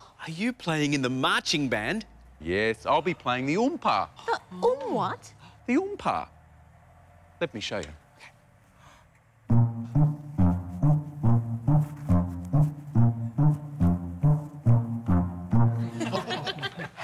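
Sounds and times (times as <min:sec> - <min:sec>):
sousaphone oom-pah bass: 0:09.5 - 0:16.0
people laughing: 0:15.8 - 0:17.0.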